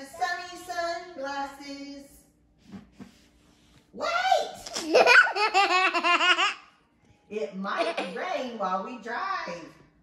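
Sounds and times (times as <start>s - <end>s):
young child laughing: 4.6s - 6.7s.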